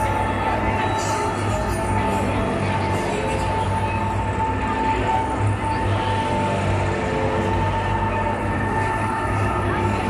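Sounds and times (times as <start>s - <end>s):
ride machinery low drone: 0.0s - 10.0s
ride machinery whine: 0.0s - 10.0s.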